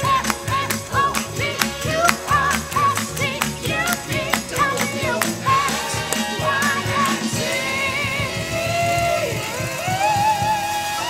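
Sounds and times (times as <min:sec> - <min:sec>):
woman singing: 0:00.0 - 0:10.2
upbeat band accompaniment: 0:00.0 - 0:11.0.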